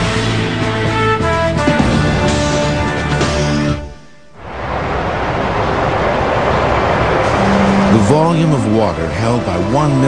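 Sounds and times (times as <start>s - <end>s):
waterfall rushing: 4.4s - 9.8s
man narrating: 7.9s - 10.0s.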